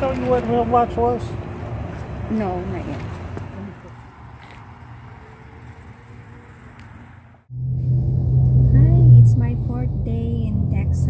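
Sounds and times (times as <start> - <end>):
outdoor background noise: 0.0 - 11.0
car drone from inside cabin: 7.4 - 11.0.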